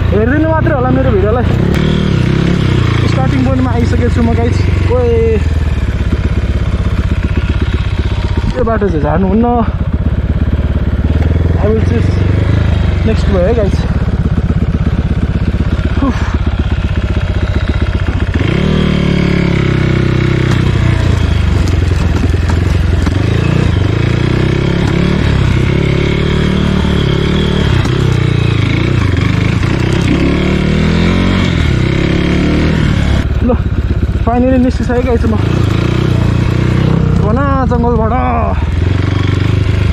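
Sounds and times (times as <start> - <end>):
dirt bike engine revving: 0.0 - 39.9.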